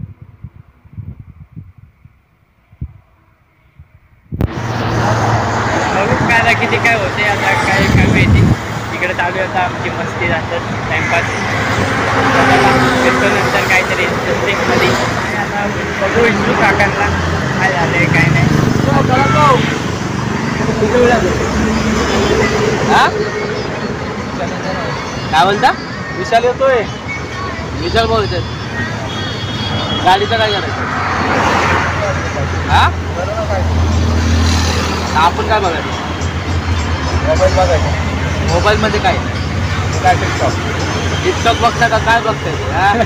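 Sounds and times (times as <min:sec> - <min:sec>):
road traffic rumble: 0:00.0 - 0:43.0
people talking: 0:05.0 - 0:11.6, 0:12.2 - 0:19.8, 0:20.5 - 0:29.3, 0:29.9 - 0:30.8, 0:31.6 - 0:33.8, 0:35.1 - 0:36.0, 0:37.1 - 0:43.0.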